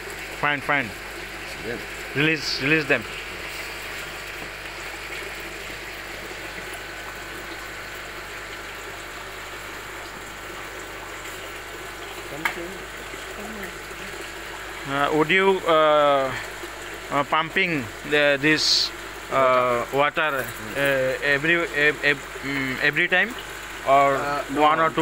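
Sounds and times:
water splashing into fish tank: 0.0s - 17.2s.

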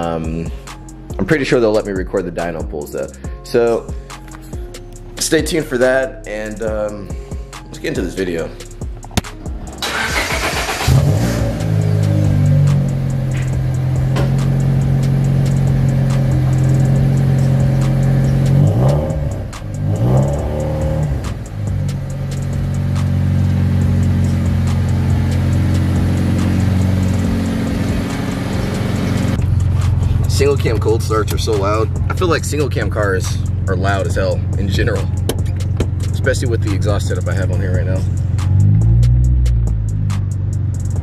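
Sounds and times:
car engine starting and idling: 4.1s - 41.0s.

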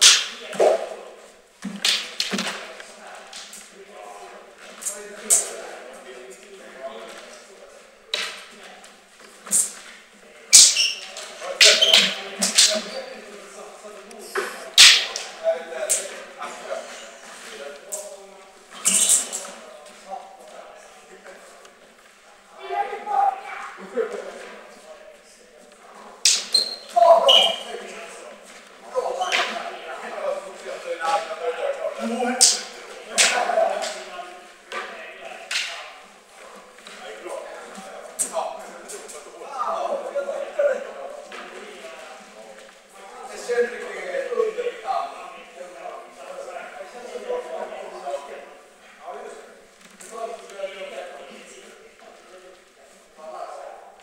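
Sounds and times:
fencing blades clashing: 0.0s - 0.8s, 10.5s - 12.9s, 14.8s - 15.3s, 26.2s - 27.5s
voices in echoing hall: 0.0s - 54.0s.

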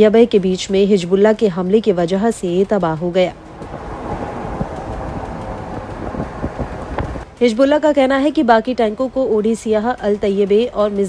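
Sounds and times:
vehicle road and wind noise: 0.0s - 11.0s.

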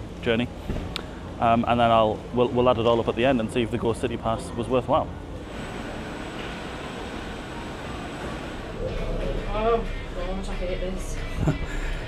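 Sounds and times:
cable car rushing noise: 5.4s - 10.5s.

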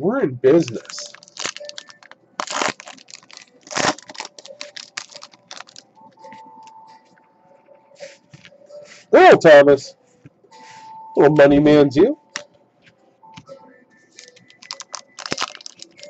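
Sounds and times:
foil wrapper tearing and crinkling: 0.6s - 5.8s, 14.2s - 16.0s.

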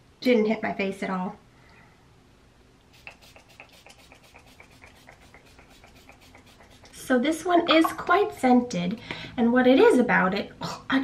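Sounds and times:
spray bottle spritz: 2.9s - 7.0s.

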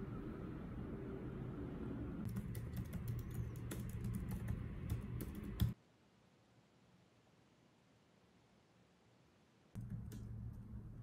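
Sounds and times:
low steady hum: 0.0s - 11.0s
computer keyboard typing: 2.2s - 5.8s, 9.8s - 10.6s.

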